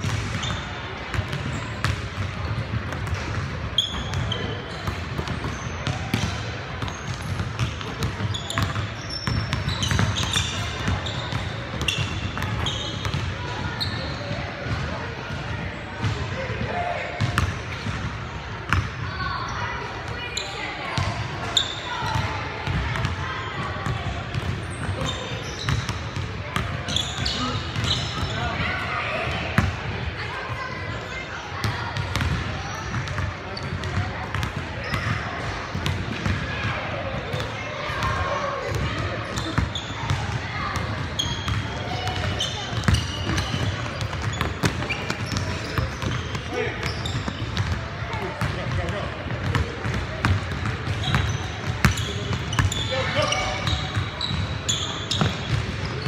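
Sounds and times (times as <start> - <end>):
sneaker squeaks: 0.0 - 14.8, 18.7 - 29.7, 31.9 - 35.2, 37.2 - 56.0.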